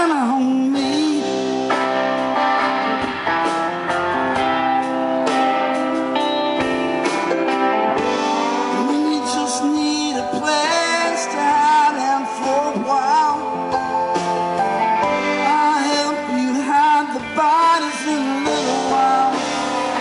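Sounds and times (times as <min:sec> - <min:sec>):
man singing: 0:00.0 - 0:01.9, 0:08.6 - 0:14.2, 0:15.4 - 0:20.0
electric guitars sustained chords: 0:00.0 - 0:20.0.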